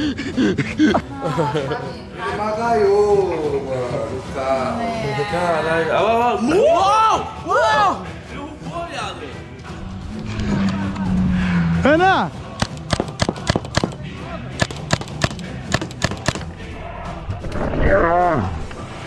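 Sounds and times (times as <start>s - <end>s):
paintball marker firing rapid shots: 12.6s - 14.0s, 14.6s - 16.5s.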